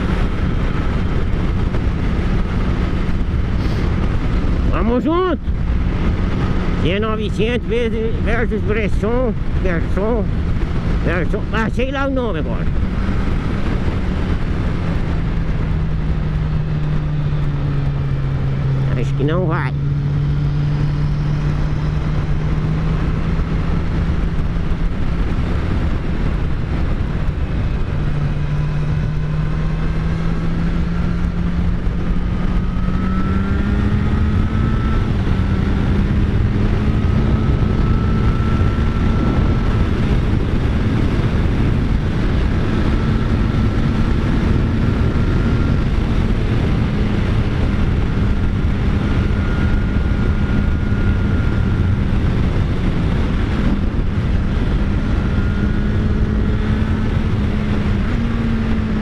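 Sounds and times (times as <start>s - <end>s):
motorcycle engine running: 0.0s - 59.0s
wind rushing on microphone: 0.0s - 59.0s.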